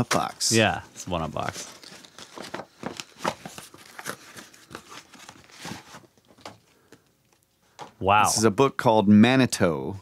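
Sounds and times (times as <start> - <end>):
packaging crinkling and tearing: 1.3 - 6.5.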